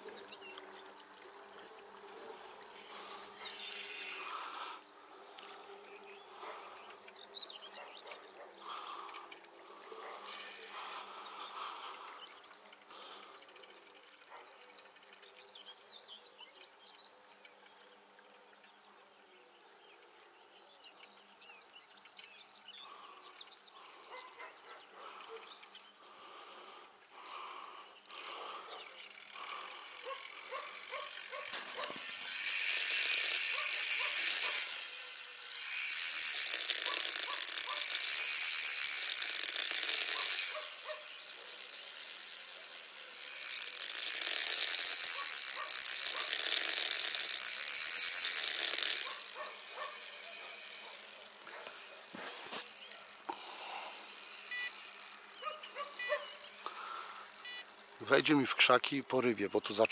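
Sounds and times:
fishing reel drag ratcheting: 0:00.0 - 0:07.2, 0:08.6 - 0:15.9, 0:22.2 - 0:59.9
quiet reel clicking: 0:00.0 - 0:59.9.

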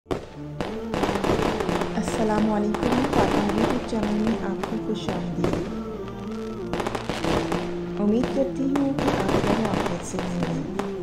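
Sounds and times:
fireworks crackling and popping: 0:00.1 - 0:11.0
music with steady notes: 0:00.1 - 0:11.0.

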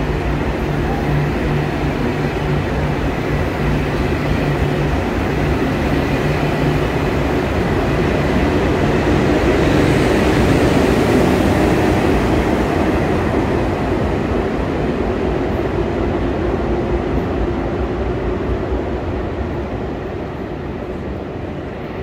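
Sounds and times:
train wheels rumbling: 0:00.0 - 0:22.0.

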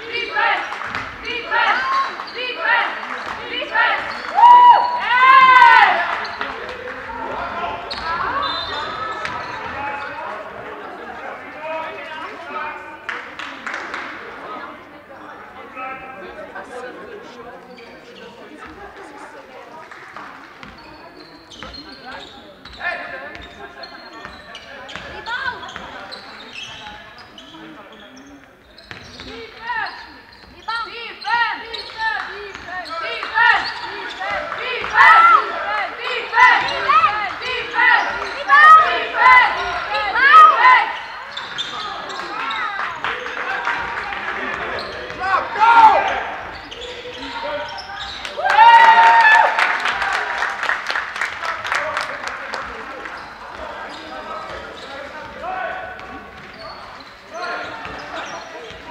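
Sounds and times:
shoes squeaking on floor: 0:07.8 - 0:10.6, 0:17.5 - 0:18.8, 0:20.6 - 0:43.4, 0:44.4 - 0:48.4, 0:53.0 - 0:58.9.

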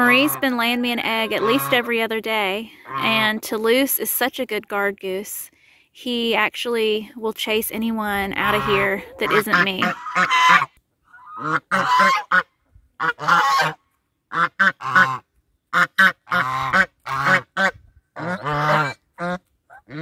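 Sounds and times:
geese honking: 0:00.0 - 0:02.1, 0:08.2 - 0:20.0.

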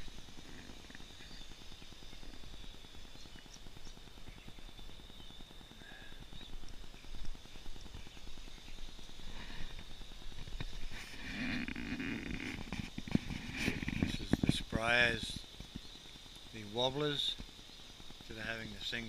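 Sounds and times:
high-pitched whine: 0:00.0 - 0:19.0
faint ticks: 0:05.7 - 0:16.6, 0:17.3 - 0:19.0.

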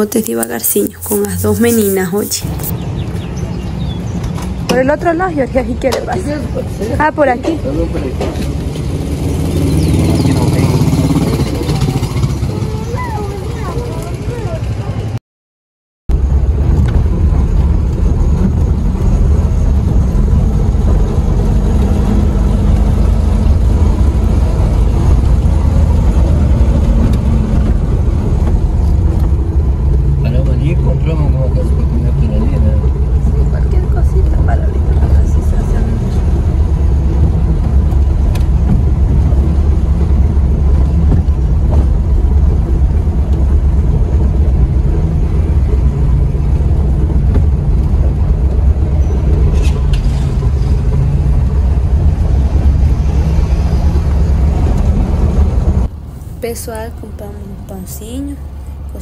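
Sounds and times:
car engine and road noise: 0:00.0 - 0:15.2, 0:16.1 - 0:59.0.

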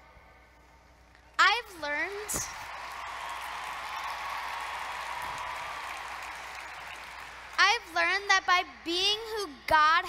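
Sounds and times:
large audience applauding: 0:02.1 - 0:07.6.

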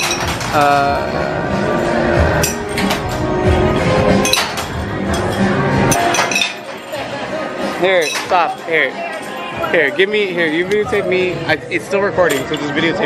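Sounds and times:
background music: 0:00.0 - 0:13.0
plastic rings clinking on glass bottles: 0:07.8 - 0:10.9, 0:12.2 - 0:12.7.

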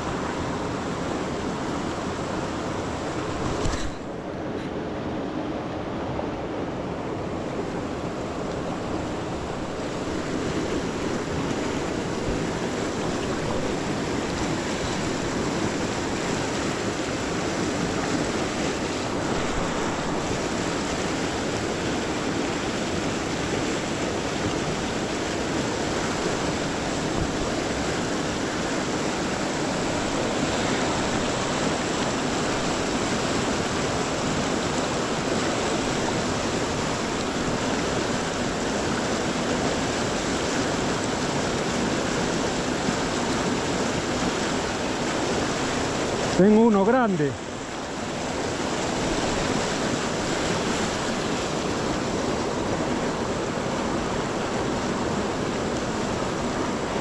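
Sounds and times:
river rushing over rapids: 0:00.0 - 0:57.0.

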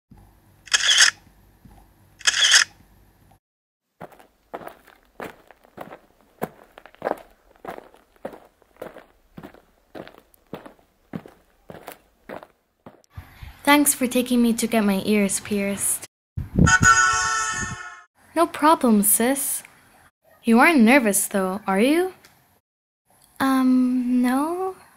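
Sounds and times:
footsteps: 0:04.0 - 0:13.1.

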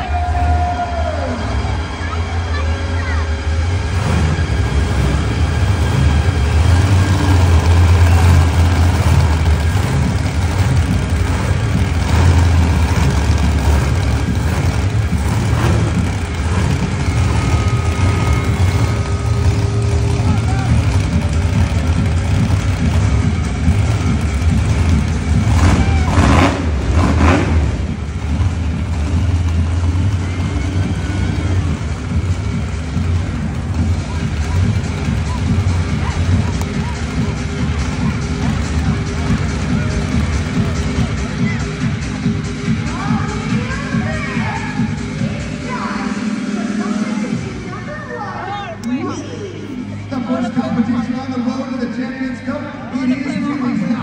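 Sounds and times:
monster truck engines rumbling: 0:00.0 - 0:54.0.

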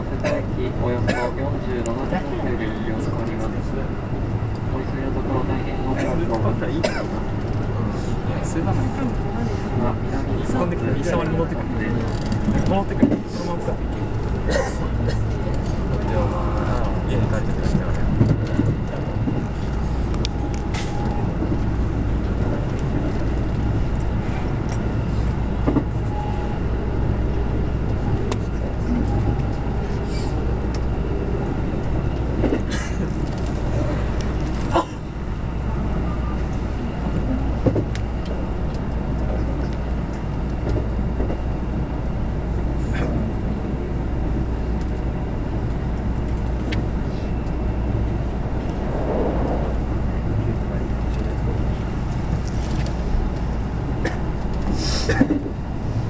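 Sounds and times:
train wheels rumbling on rails: 0:00.0 - 0:56.0
low motor hum: 0:45.2 - 0:54.6.

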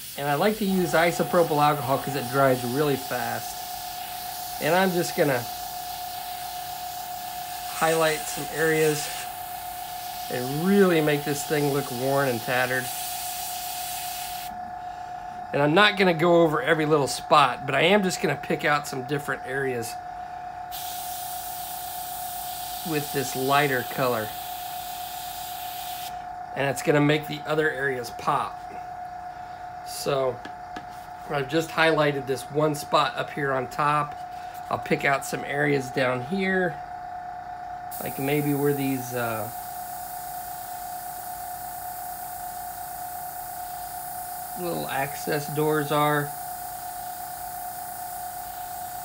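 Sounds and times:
airbrush spraying hiss: 0:00.0 - 0:14.5, 0:20.7 - 0:26.2, 0:37.9 - 0:49.0
constant high-pitched tone: 0:00.0 - 0:49.0.

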